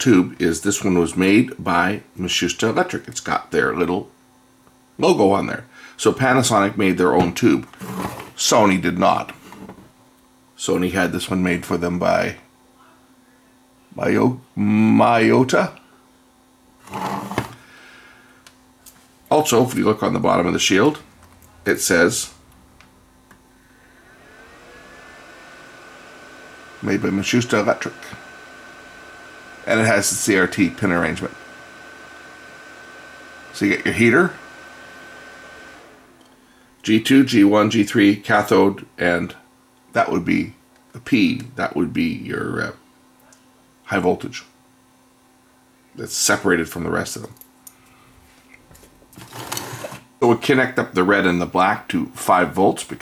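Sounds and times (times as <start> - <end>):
circuit board scraping on workbench: 7.7 - 8.4, 9.4 - 9.8, 16.8 - 17.6, 49.2 - 50.0
faint engine-like whine: 19.8 - 36.8.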